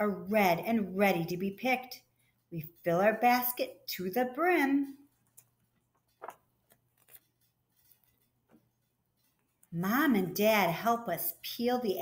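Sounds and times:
book page turning: 0:05.1 - 0:09.6.

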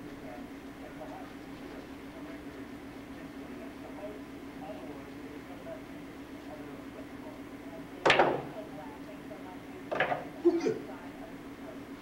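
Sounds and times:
billiard balls clacking: 0:08.0 - 0:08.6, 0:09.9 - 0:10.4
cue striking cue ball: 0:08.0 - 0:08.6, 0:09.9 - 0:10.4.

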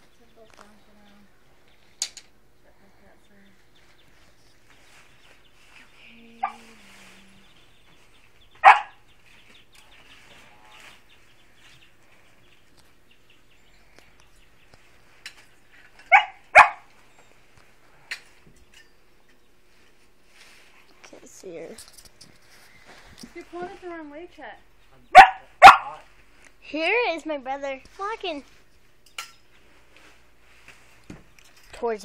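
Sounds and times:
dog barking: 0:06.4 - 0:06.7, 0:08.6 - 0:09.0, 0:16.1 - 0:16.9, 0:25.1 - 0:26.0.

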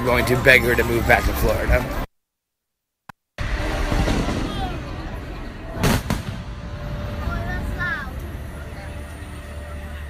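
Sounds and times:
fireworks exploding: 0:03.4 - 0:07.2
steady low rumble: 0:03.4 - 0:09.6.

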